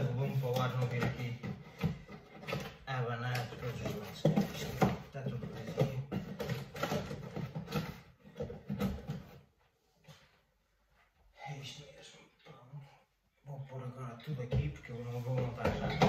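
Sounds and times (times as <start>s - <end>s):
cardboard box rustling and knocking: 3.7s - 9.5s.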